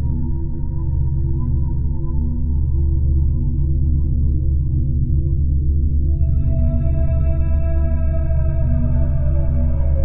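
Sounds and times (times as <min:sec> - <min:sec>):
eerie drone music: 0:06.0 - 0:10.0.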